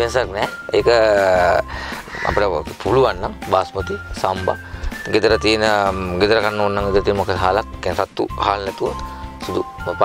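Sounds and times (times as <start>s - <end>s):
background music with held tones: 0.0s - 10.0s.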